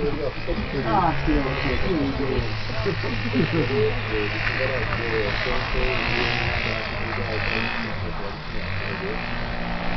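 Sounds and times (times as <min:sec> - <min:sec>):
model boat motor buzzing: 0:00.0 - 0:09.9.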